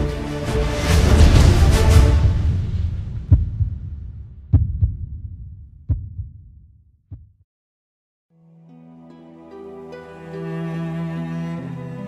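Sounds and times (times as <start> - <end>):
low rumble: 0.8 - 6.7
heartbeat-like thumps: 1.1 - 7.4.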